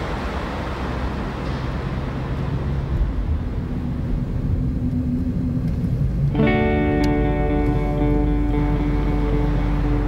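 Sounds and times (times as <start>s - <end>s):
vehicle running: 0.0s - 10.0s.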